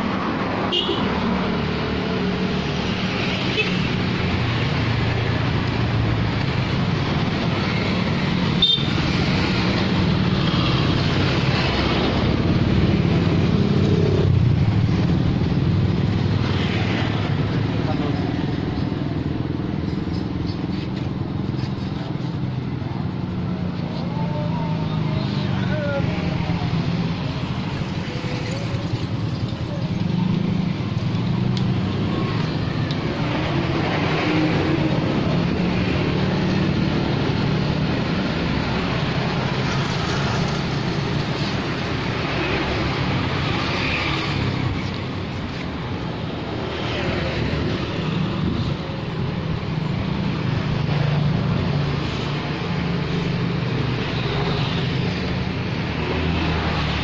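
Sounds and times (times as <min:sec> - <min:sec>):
motorcycles passing: 0:00.0 - 0:57.0
road traffic engine noise: 0:00.0 - 0:57.0.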